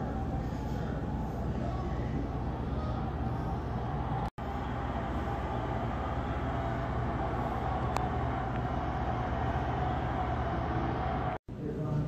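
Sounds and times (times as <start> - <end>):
low indoor room rumble: 0.0 - 12.0.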